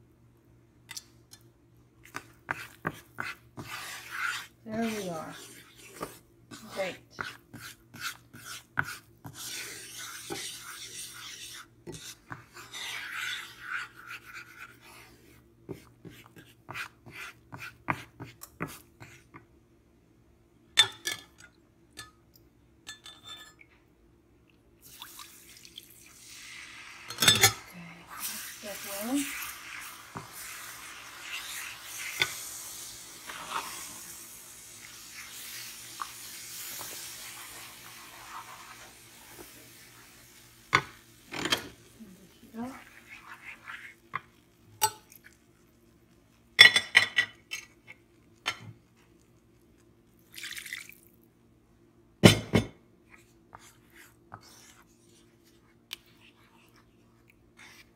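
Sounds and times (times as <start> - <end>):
wooden spoon scraping a pan: 2.1 - 19.4, 27.2 - 40.2, 40.8 - 44.4, 53.1 - 57.9.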